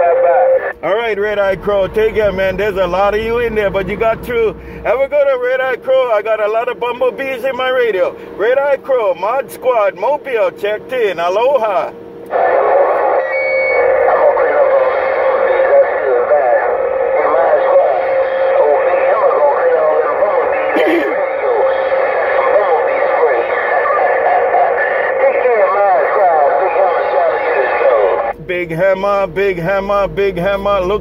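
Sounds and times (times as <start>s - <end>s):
jumble of radio voices: 0.0s - 31.0s
steady heterodyne whistle: 13.2s - 14.2s.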